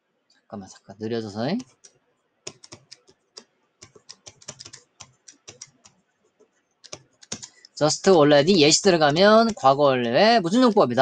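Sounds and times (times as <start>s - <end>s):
stylus tapping on tablet: 1.6s - 6.0s, 6.9s - 7.7s, 9.0s - 10.7s.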